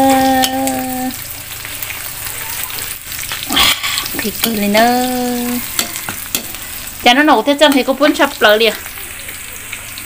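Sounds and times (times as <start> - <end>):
meat sizzling in a wok: 0.0 - 10.0.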